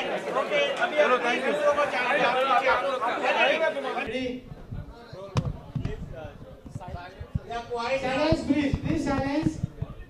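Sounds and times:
voices murmuring in a hall: 0.0 - 10.0
dull low thumps: 4.4 - 10.0.

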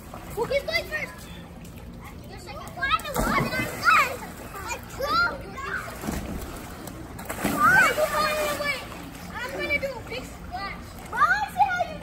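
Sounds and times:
water splashing: 0.0 - 12.0
children's voices: 0.3 - 6.1, 7.4 - 12.0.

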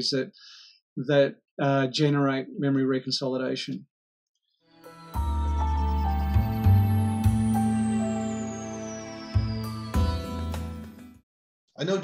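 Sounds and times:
background music sustained tones: 4.7 - 11.2.

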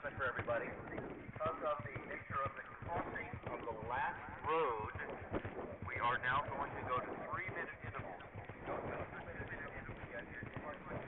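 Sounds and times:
horse hoofbeats galloping on grass: 0.0 - 11.0.

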